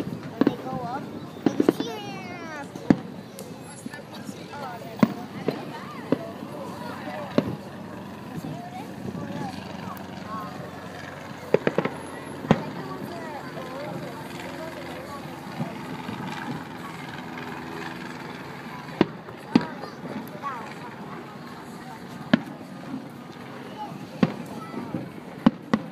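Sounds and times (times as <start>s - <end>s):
fireworks bangs: 0.0s - 9.9s, 11.2s - 16.8s, 18.6s - 25.9s
people chatting: 0.0s - 25.9s.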